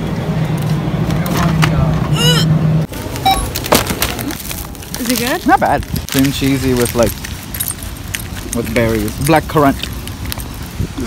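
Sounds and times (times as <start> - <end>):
parking lot noise: 0.0 - 11.0.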